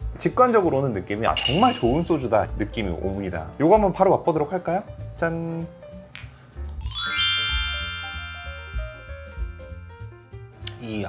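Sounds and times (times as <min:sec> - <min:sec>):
long ringing chord: 0:06.8 - 0:10.4.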